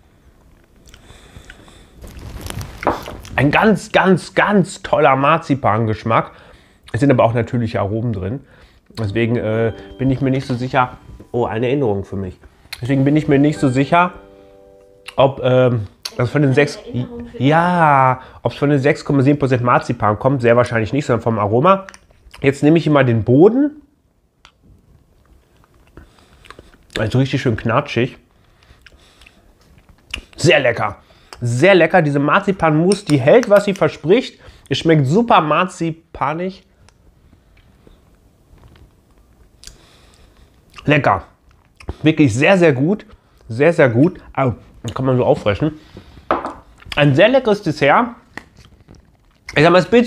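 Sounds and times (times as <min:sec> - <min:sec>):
chewing soft food: 0:25.2 - 0:27.0, 0:28.4 - 0:30.4, 0:48.4 - 0:49.6.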